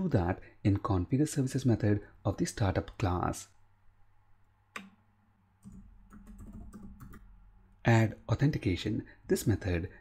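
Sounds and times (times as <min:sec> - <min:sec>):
computer keyboard typing: 0:05.6 - 0:07.3.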